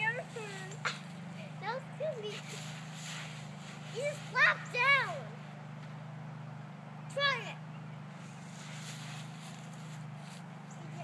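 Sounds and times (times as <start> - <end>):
steady low hum: 0.0 - 11.0
dry leaves rustling underfoot: 2.1 - 5.5, 8.0 - 11.0.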